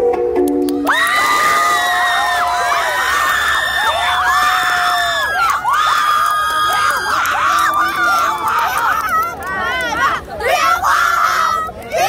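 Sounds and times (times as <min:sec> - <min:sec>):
audience cheering and screaming: 0:00.8 - 0:11.8.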